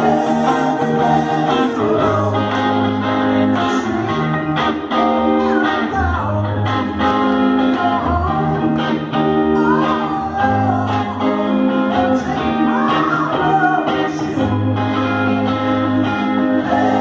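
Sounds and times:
electric guitar: 0.0 - 17.0
low bass notes: 0.0 - 17.0
person singing: 0.0 - 17.0.

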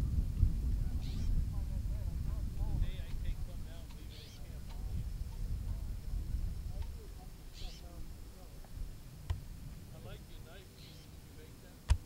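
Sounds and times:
steady low rumble: 0.0 - 12.0
distant people talking: 0.6 - 12.0.

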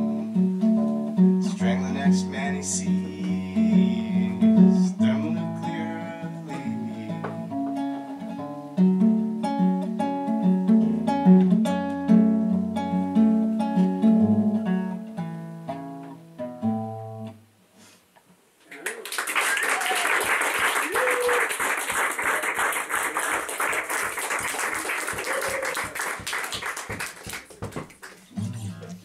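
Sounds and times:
fast rhythmic guitar strumming: 0.0 - 17.4
acoustic guitar picked notes: 0.0 - 17.6, 28.4 - 29.0.

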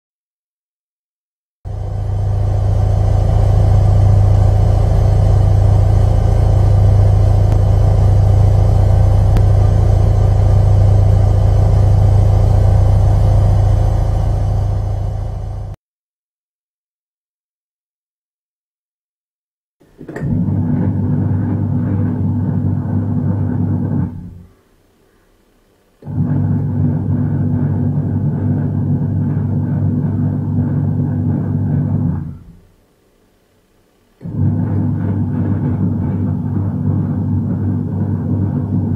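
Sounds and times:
washing machine humming: 1.7 - 15.8, 19.8 - 24.6, 26.0 - 33.0, 34.2 - 38.9.

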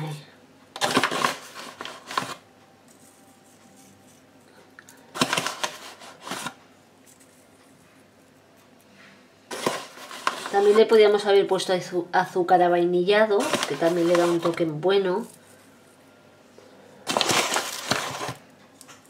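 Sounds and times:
spoon scraping in sugar container: 9.5 - 11.0, 13.3 - 15.5.

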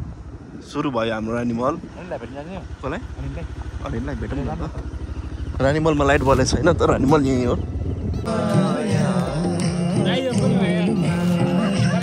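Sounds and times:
people talking: 0.7 - 4.8, 5.6 - 7.7, 8.6 - 12.0
low engine throb: 1.6 - 12.0.

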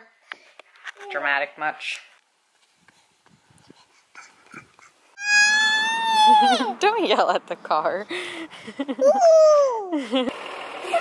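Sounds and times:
toddler yelling high-pitched: 5.2 - 6.7, 9.0 - 9.9.

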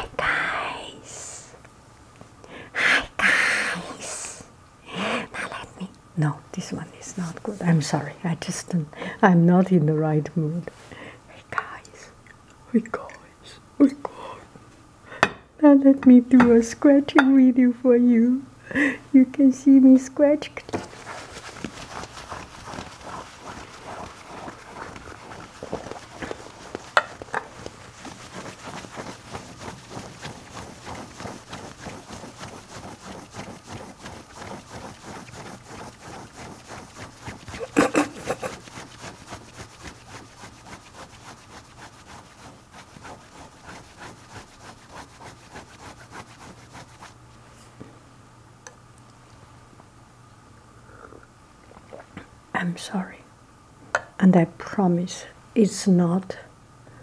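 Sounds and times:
fingernails scratching ceramic plate: 20.8 - 47.1.

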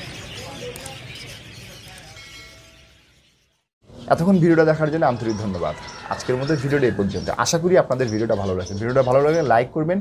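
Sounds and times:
ringing chime: 2.1 - 3.0.

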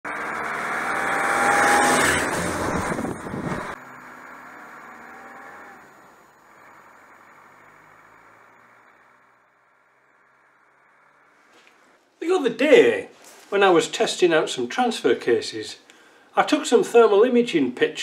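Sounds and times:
off-road vehicle driving on gravel: 0.1 - 13.9.

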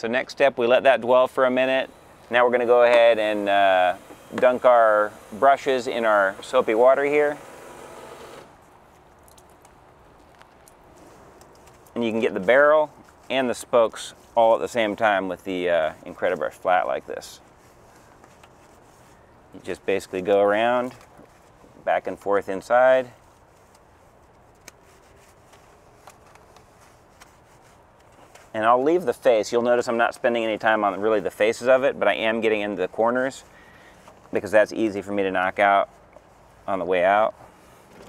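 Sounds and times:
brush scrubbing a wheel: 1.0 - 7.5, 11.0 - 33.5
wet brush squishing: 23.2 - 28.6.

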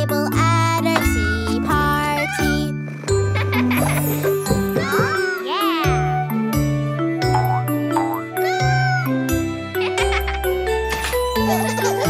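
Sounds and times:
children's song singing: 0.0 - 2.8
backing music: 2.6 - 12.0
cartoon kitten meowing: 8.4 - 9.2.

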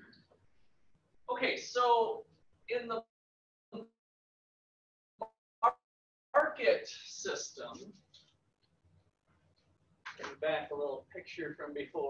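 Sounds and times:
man speaking: 1.3 - 3.0, 6.4 - 7.9, 10.1 - 12.0.

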